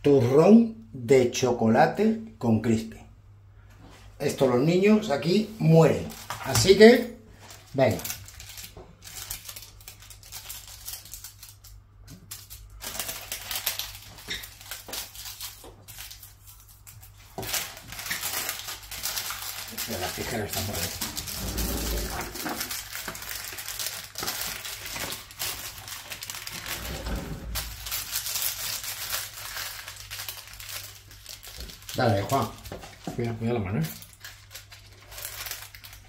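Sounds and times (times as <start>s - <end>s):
paper crinkling and rustling: 5.8s - 36.0s.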